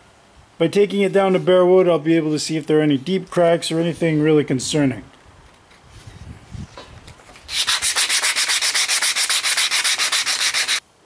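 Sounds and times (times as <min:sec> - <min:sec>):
sandpaper scratching on wood: 0:07.5 - 0:10.8.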